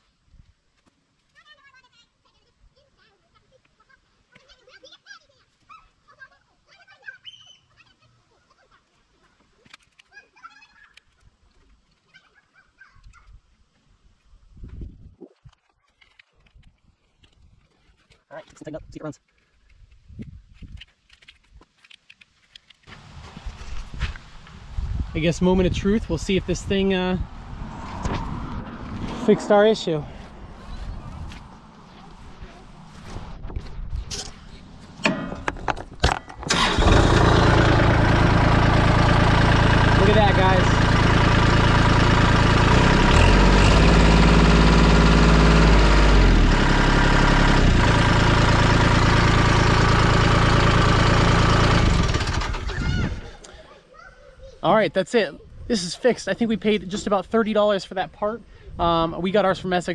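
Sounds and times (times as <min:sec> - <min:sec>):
starter cranking: 0:35.0 - 0:53.2
diesel engine idling: 0:36.5 - 0:53.0.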